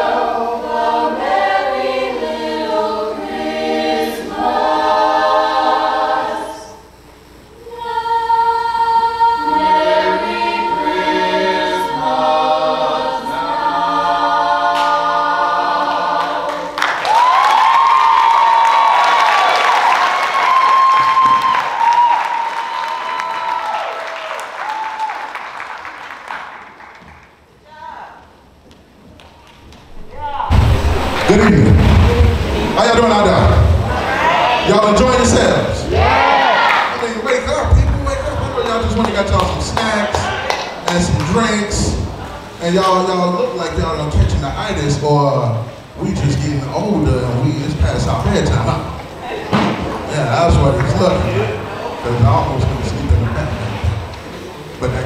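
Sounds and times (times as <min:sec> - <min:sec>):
choir singing: 0:00.0 - 0:06.9, 0:07.6 - 0:17.1, 0:30.0 - 0:37.2
audience applause: 0:16.2 - 0:27.4, 0:36.0 - 0:41.4.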